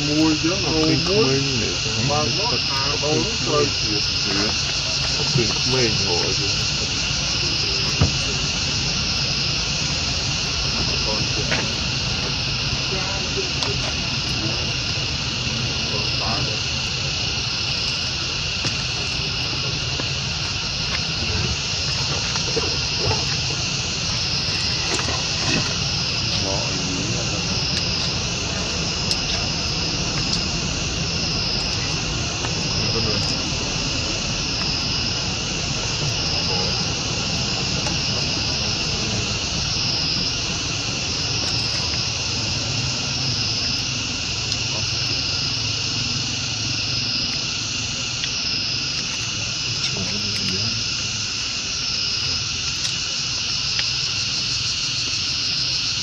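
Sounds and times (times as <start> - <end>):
insects chirping chorus: 0.0 - 56.0
low steady rumble: 0.0 - 56.0.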